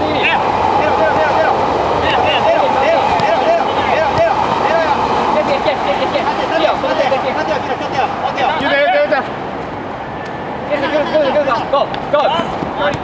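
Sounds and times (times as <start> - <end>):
players shouting calls: 0.0 - 9.4
city noise hum: 0.0 - 13.0.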